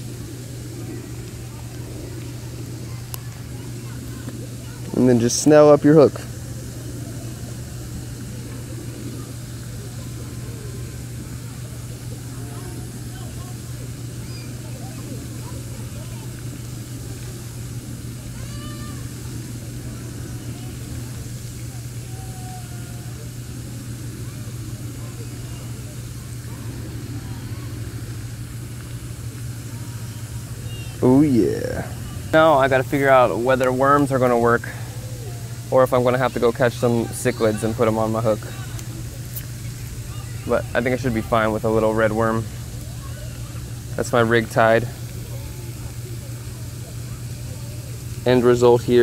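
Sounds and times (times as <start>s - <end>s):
low outdoor background hum: 0.0s - 49.0s.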